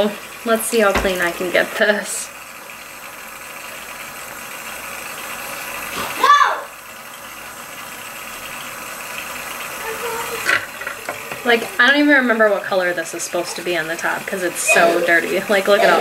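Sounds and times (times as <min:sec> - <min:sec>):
tap running into a sink: 0:00.8 - 0:01.6, 0:10.3 - 0:12.0.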